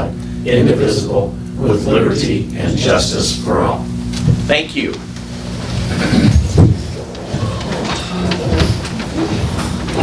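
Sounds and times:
office chairs rolling: 4.4s - 10.0s.

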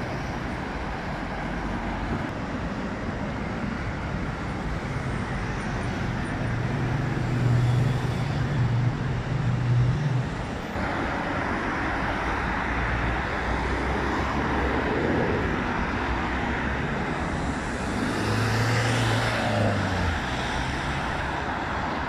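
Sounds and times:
road noise: 0.0s - 22.0s
rush of cars passing: 0.0s - 22.0s.

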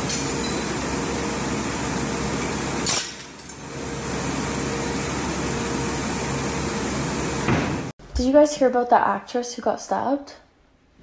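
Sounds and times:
workshop machinery hum: 0.0s - 8.2s.

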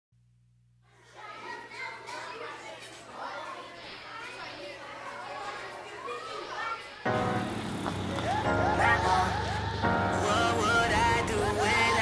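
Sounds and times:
children chattering: 0.8s - 12.0s.

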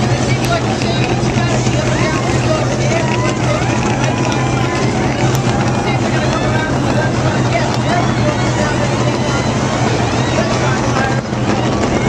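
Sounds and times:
indistinct voices: 0.0s - 12.0s
race car engines droning: 0.0s - 12.0s.

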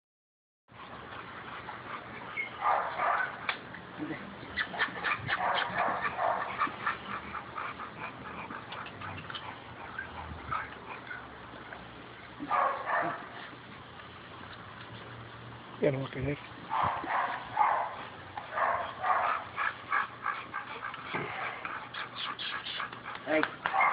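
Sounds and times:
dog barking: 2.6s - 3.4s, 5.4s - 6.5s, 12.5s - 13.3s, 16.7s - 19.4s, 23.7s - 23.9s.

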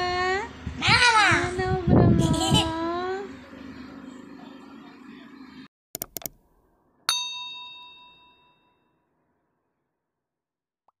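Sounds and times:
bell-like ding: 7.1s - 9.0s.

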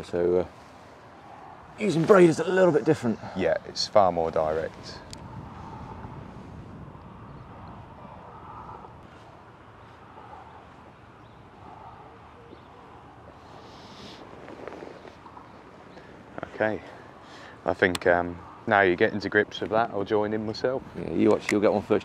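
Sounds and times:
low wind rumble on microphone: 0.0s - 22.0s.

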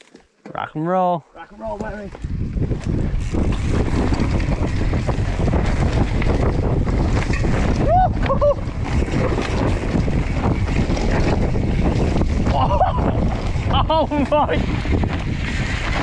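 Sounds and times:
wind rush on microphone: 1.5s - 16.0s
person whooping: 7.8s - 8.7s, 12.5s - 13.2s.

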